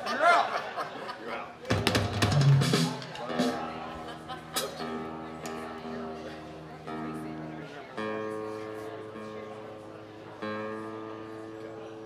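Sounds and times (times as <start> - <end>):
drum kit hits: 1.7 - 3.6
guitar notes ringing: 4.5 - 12.0.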